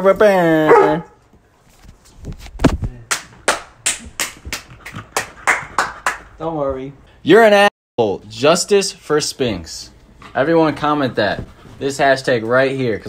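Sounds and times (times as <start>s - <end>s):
hand claps: 3.0s - 6.4s.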